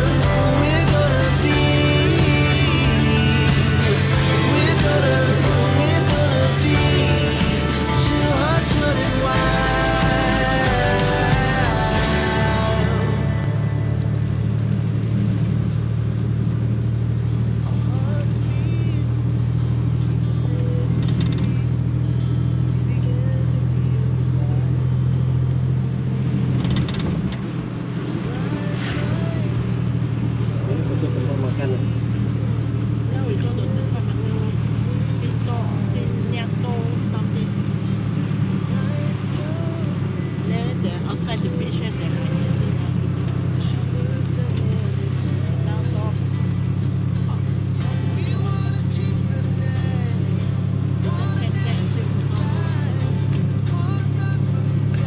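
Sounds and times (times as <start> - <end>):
auto rickshaw engine running: 0.0 - 55.0.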